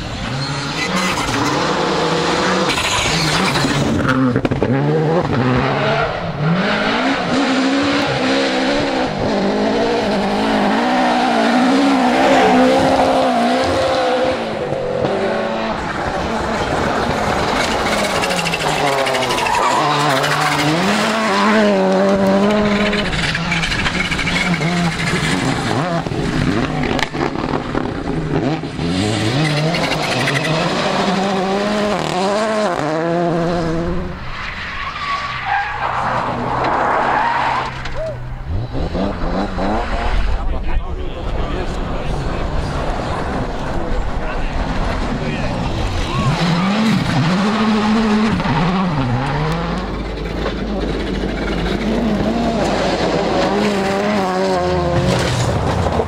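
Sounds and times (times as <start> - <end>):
gravel and tyre noise: 0.0 - 56.0
rally car engines revving: 0.0 - 56.0.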